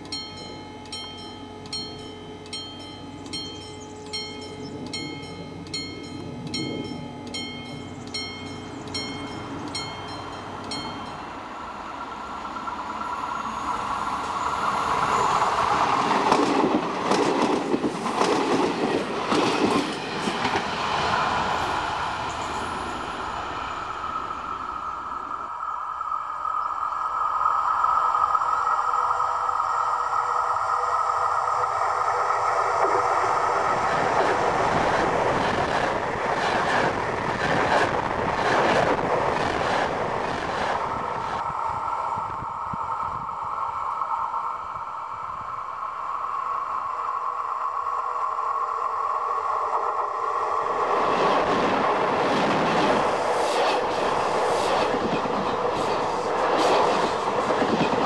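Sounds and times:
train wheels rattling over rails: 0:14.1 - 0:23.3, 0:31.5 - 0:41.4, 0:49.9 - 0:58.0.

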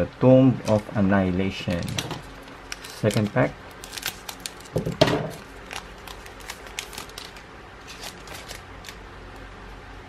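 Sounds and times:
foil wrapper tearing: 0:01.6 - 0:09.0
wrapper crinkling: 0:01.6 - 0:09.0.

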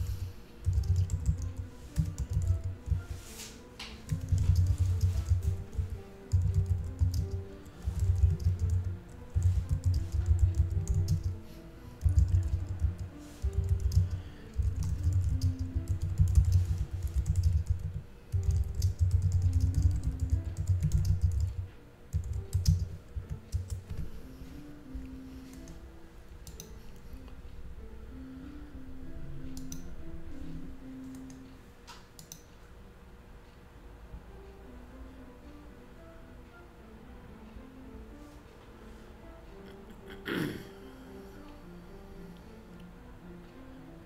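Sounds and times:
faint background music: 0:00.0 - 0:44.0
typing on computer keyboard: 0:00.6 - 0:03.1, 0:03.8 - 0:11.4, 0:12.0 - 0:24.1, 0:32.2 - 0:32.5.

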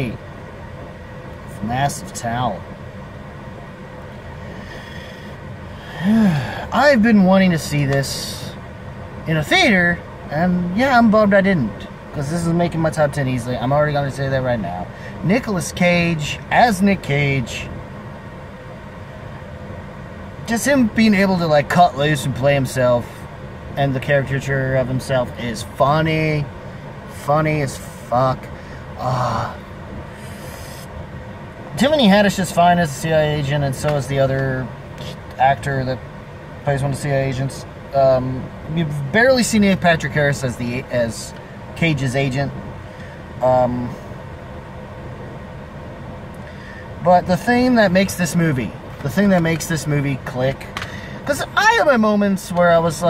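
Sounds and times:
car idling rumble: 0:00.0 - 0:53.0
faint steady hum: 0:00.0 - 0:53.0
faint steady whine: 0:00.0 - 0:53.0.

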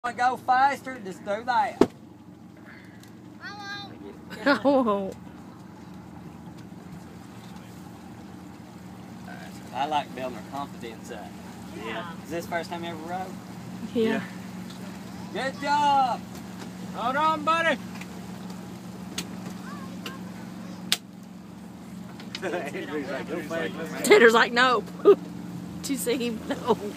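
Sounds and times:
boat motor humming: 0:00.0 - 0:26.9
faint voices: 0:19.5 - 0:20.9.

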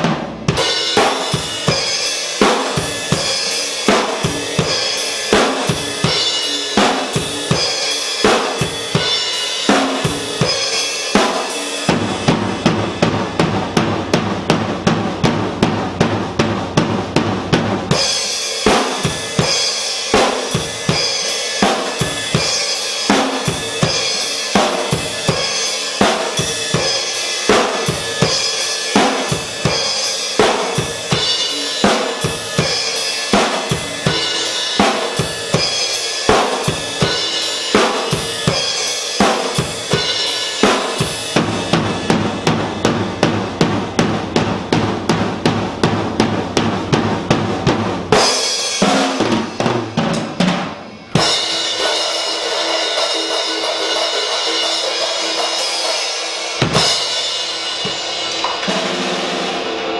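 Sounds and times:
drum kit playing: 0:00.0 - 0:59.9
cymbal crashes: 0:48.2 - 0:59.9.

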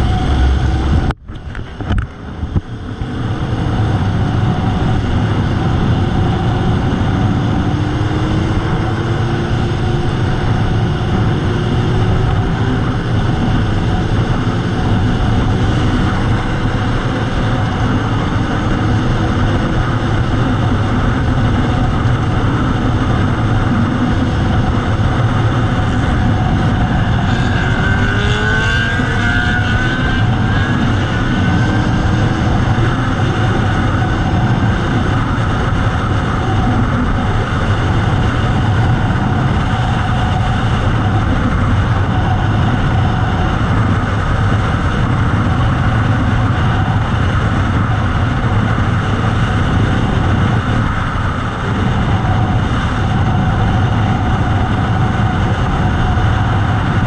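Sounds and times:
heavy wind rush: 0:00.0 - 0:57.0
motorcycle engine running: 0:00.0 - 0:57.0.

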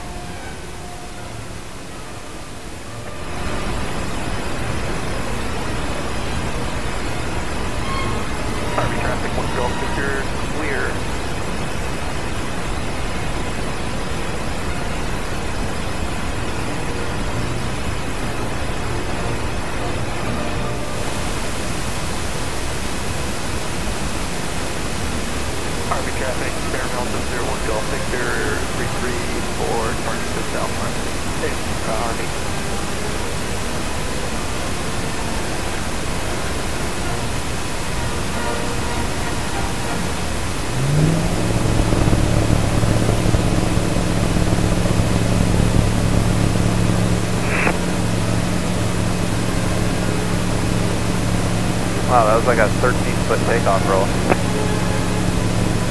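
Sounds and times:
light aircraft engine and propeller: 0:00.0 - 0:55.9.

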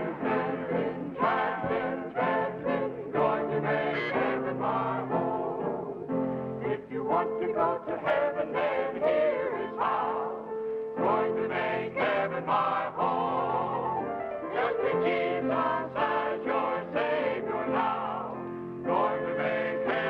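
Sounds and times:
male vocal group singing in harmony: 0:00.0 - 0:06.0, 0:06.6 - 0:20.0.

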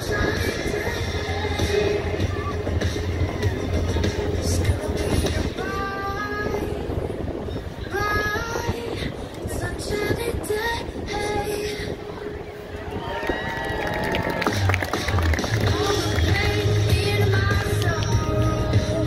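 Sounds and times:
bass line: 0:00.0 - 0:05.7, 0:13.8 - 0:19.0.

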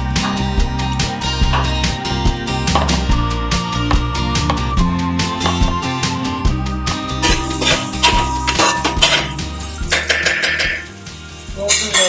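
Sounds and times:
background music: 0:00.0 - 0:12.0
metal spoon scraping metal pan: 0:07.2 - 0:11.0, 0:11.7 - 0:12.0.

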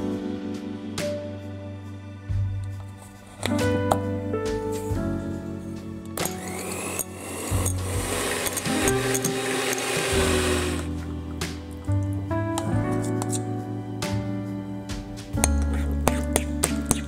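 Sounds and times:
electric hand mixer running: 0:06.2 - 0:10.9.

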